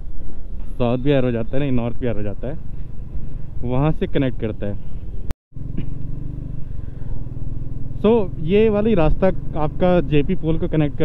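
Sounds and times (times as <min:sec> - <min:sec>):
wind and road noise: 0:00.0 - 0:11.0
motorcycle engine running: 0:01.8 - 0:11.0.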